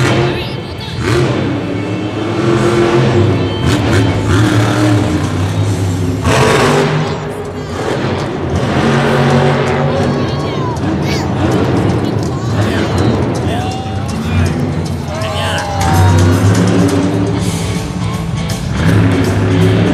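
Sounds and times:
monster truck engine revving: 0:00.0 - 0:19.9.

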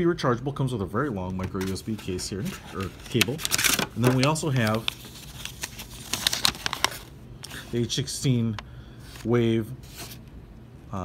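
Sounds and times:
paper rustling and crackling: 0:01.3 - 0:07.9.

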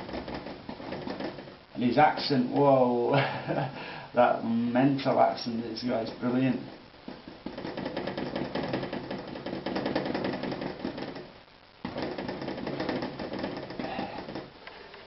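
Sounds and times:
paintbrush dabbing on canvas: 0:05.8 - 0:14.5.

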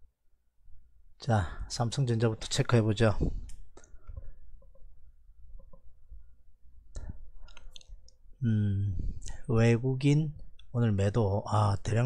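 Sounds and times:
man talking: 0:01.2 - 0:03.4, 0:08.4 - 0:12.0.

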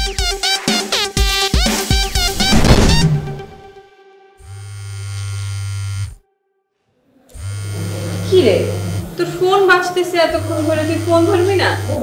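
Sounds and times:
mobile phone vibrating: 0:04.4 - 0:06.2, 0:07.3 - 0:09.2, 0:10.3 - 0:12.0.

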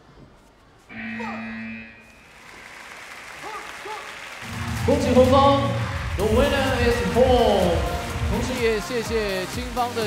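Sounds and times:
buzzer steady tone: 0:00.9 - 0:02.4.

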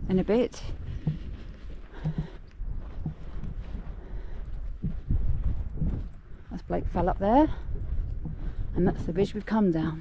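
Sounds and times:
footsteps on grassy path: 0:00.0 - 0:10.0
wind rumbling on microphone: 0:00.0 - 0:10.0.

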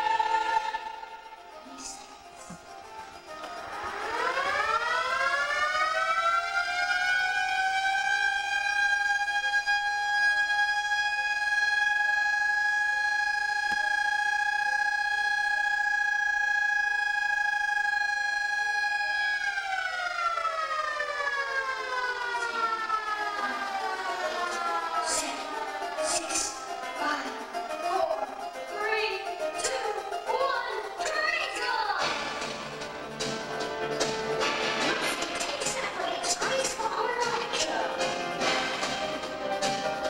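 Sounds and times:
siren-like wail: 0:00.0 - 0:40.0.

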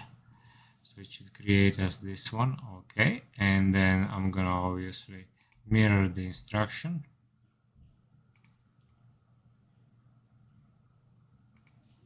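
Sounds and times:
faint steady hum: 0:00.0 - 0:12.0
computer mouse clicks: 0:08.3 - 0:08.6, 0:11.5 - 0:11.9.

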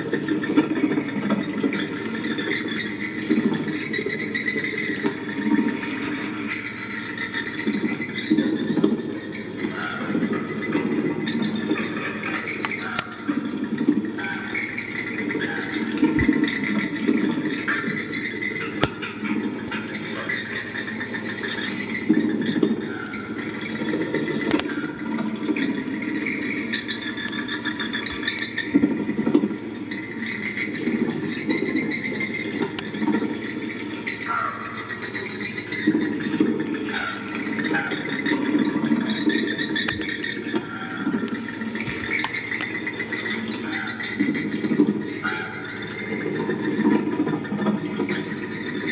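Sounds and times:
electronic squealing and screeching: 0:00.0 - 0:48.9.

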